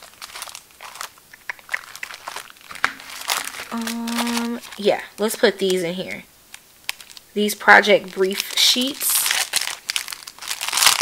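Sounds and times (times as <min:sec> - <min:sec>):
paper and plastic rustling: 0:00.0 - 0:07.2, 0:07.8 - 0:11.0.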